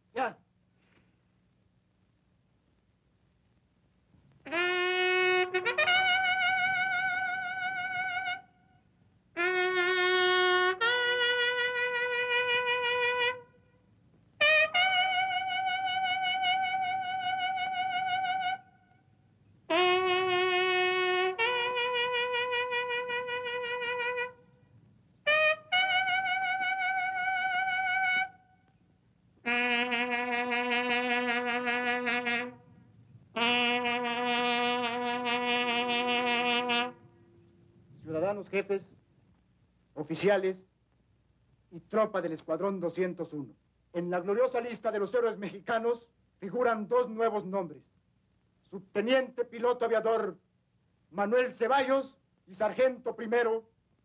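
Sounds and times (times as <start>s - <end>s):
bugle playing slow call: 4.4s - 28.8s, 29.4s - 38.4s.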